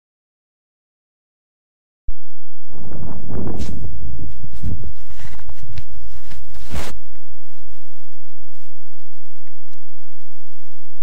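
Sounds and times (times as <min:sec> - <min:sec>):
low rumble: 0:02.1 - 0:11.0
close rustling and scraping: 0:03.4 - 0:08.8.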